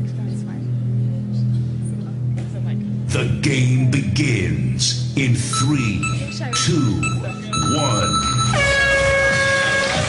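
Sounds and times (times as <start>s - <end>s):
background music: 0.0s - 10.0s
game show horn blaring: 5.2s - 10.0s.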